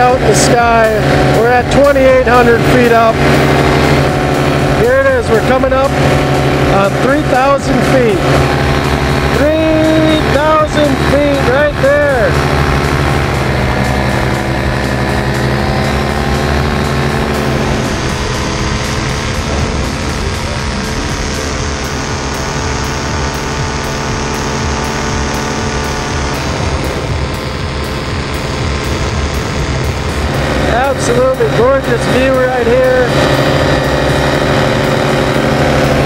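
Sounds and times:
paramotor engine and propeller: 0.0 - 36.0.

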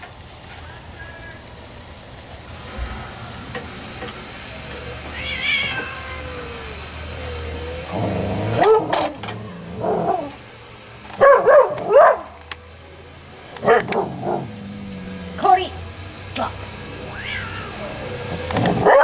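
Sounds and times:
food sizzling on grill: 0.0 - 19.0
cat meowing: 5.0 - 7.9, 17.0 - 18.1.

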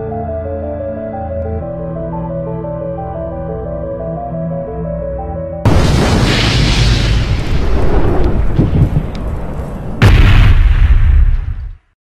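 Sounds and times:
sharp blast: 5.7 - 9.1, 10.0 - 11.8
debris crackle: 5.7 - 11.9
explosion rumble: 5.7 - 11.9.

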